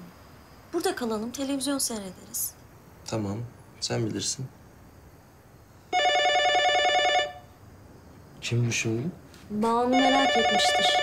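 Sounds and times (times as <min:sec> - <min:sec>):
electronic telephone ring: 0:05.9 - 0:07.5, 0:09.9 - 0:11.0.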